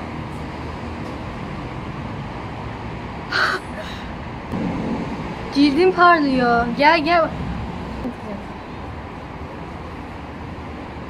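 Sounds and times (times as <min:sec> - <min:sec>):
low traffic hum: 0:00.0 - 0:11.0.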